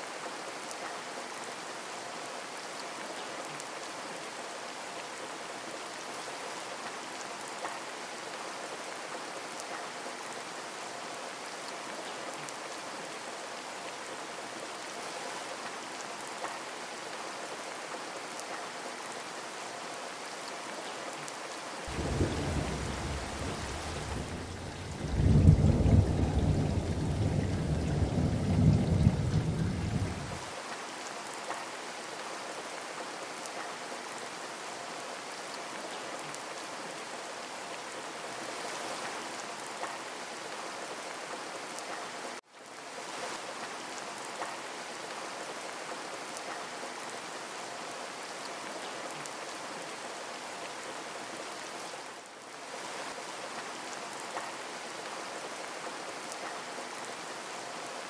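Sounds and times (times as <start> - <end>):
rain hiss: 0.0 - 58.0
thunder rumble: 21.9 - 30.4.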